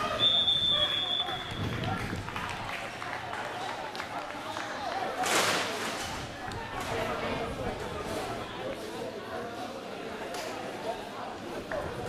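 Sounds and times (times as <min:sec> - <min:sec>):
high steady whistle tone: 0:00.0 - 0:01.6.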